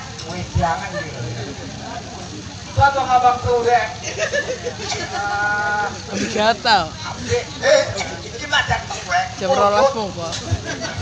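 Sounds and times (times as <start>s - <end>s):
voices over public-address system: 4.7s - 11.0s.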